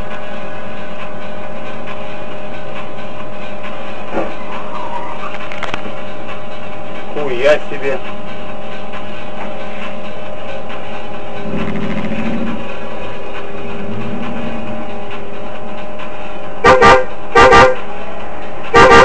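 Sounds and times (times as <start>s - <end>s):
traffic and engine drone: 0.0s - 19.0s
car horn toots: 16.6s - 17.9s, 18.7s - 19.0s.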